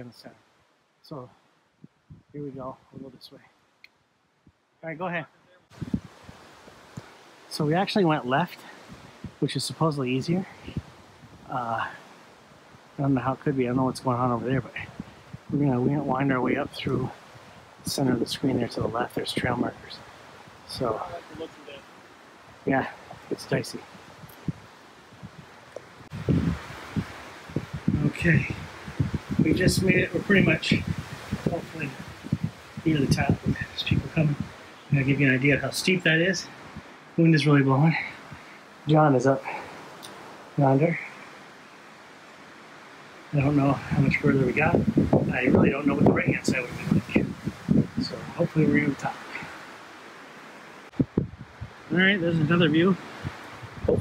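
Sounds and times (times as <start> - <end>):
wind rustling leaves: 0.0 - 54.0
wind buffeting microphone: 1.1 - 3.2, 4.4 - 41.0, 43.3 - 49.8, 50.8 - 54.0.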